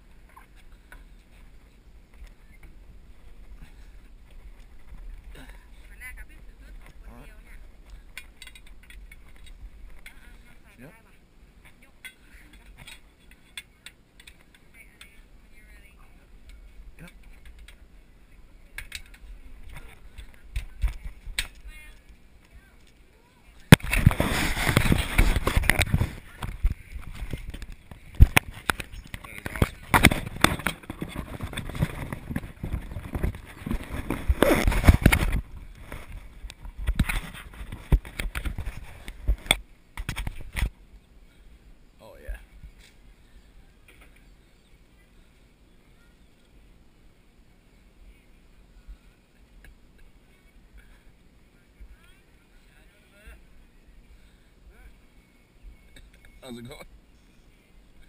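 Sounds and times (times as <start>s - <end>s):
camera rubbing on metal rail: 23.8s - 40.7s.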